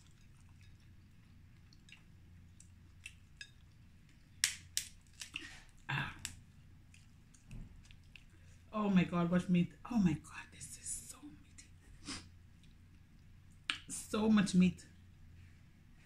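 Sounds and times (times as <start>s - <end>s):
wet mouth clicks and chewing: 0.0s - 8.6s
faint low hum: 0.0s - 16.0s.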